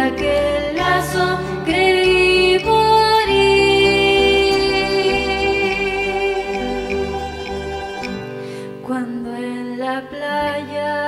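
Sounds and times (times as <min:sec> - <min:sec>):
acoustic guitar: 0:00.0 - 0:11.0
woman singing folk song: 0:00.0 - 0:11.0.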